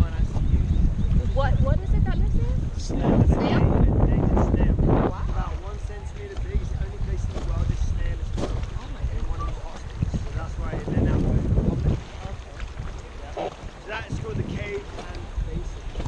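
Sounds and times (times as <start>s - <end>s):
fast choppy river rushing: 0.0s - 16.0s
wind buffeting microphone: 0.0s - 16.0s.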